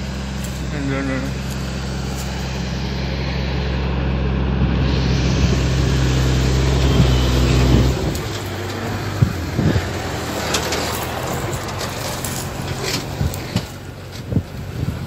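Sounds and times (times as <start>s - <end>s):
diesel truck driving past: 0.0s - 15.0s
tyres on dirt track: 0.0s - 15.0s.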